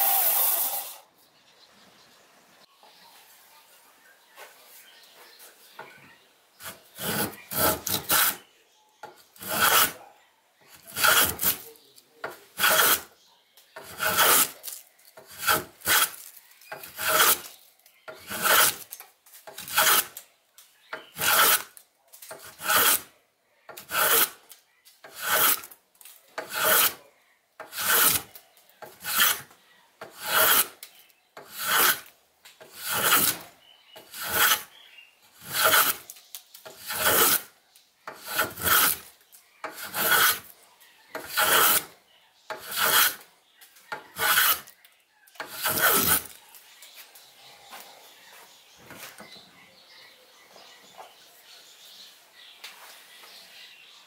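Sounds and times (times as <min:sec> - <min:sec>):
plane blade rasping on sandpaper: 0:06.6 - 0:08.4, 0:09.4 - 0:10.0, 0:10.8 - 0:11.7, 0:12.6 - 0:13.1, 0:13.8 - 0:14.7, 0:15.3 - 0:17.5, 0:18.2 - 0:18.9, 0:19.6 - 0:20.2, 0:21.2 - 0:21.7, 0:22.4 - 0:23.0, 0:23.8 - 0:24.4, 0:25.1 - 0:25.7, 0:26.4 - 0:27.0, 0:27.7 - 0:28.3, 0:29.0 - 0:29.4, 0:30.1 - 0:30.8, 0:31.5 - 0:32.1, 0:32.7 - 0:33.5, 0:34.1 - 0:34.7, 0:35.4 - 0:36.0, 0:36.8 - 0:37.5, 0:38.2 - 0:39.1, 0:39.7 - 0:40.5, 0:41.2 - 0:41.9, 0:42.6 - 0:43.2, 0:44.2 - 0:44.7, 0:45.5 - 0:46.3.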